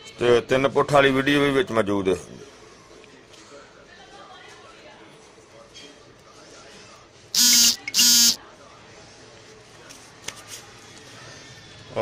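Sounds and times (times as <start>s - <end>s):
electric buzzer: 7.4s - 8.4s.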